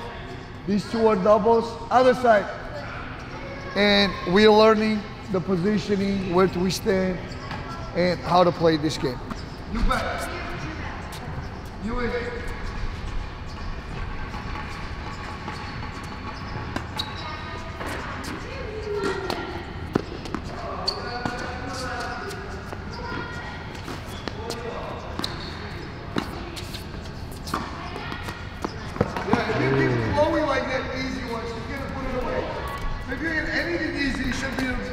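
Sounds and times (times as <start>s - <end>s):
tennis balls bouncing on hard court: 17.8s - 20.6s, 21.2s - 30.4s
tennis balls struck with racquets: 27.4s - 30.2s.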